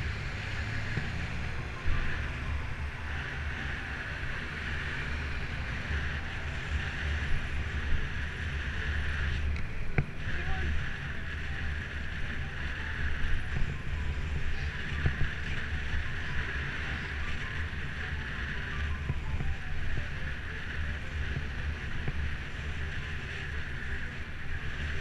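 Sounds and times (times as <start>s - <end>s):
road noise: 0.0s - 25.0s.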